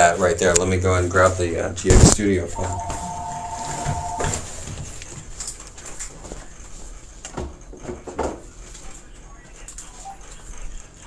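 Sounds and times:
faint room noise: 0:00.0 - 0:11.0
two-pitch electronic tone: 0:02.6 - 0:04.5.

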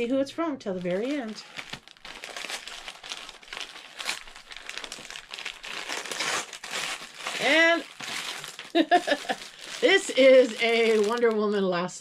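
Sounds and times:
wrapping paper crinkling and tearing: 0:00.7 - 0:11.6.

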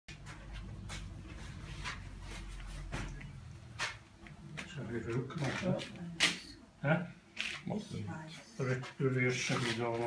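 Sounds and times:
paintbrush scrubbing canvas: 0:00.2 - 0:03.0.

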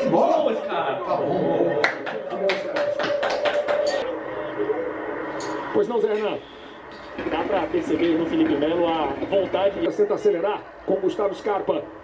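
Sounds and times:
hand clapping: 0:01.8 - 0:04.0.

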